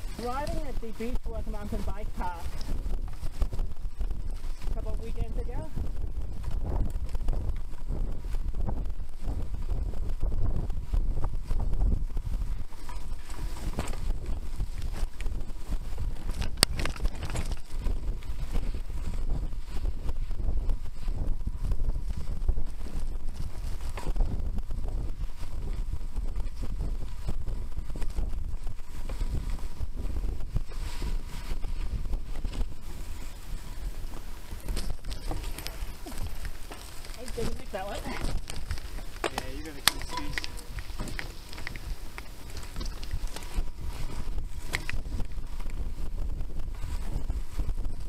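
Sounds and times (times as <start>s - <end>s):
bike tyres and frame rattling: 0.0s - 48.0s
wind buffeting microphone: 0.0s - 48.0s.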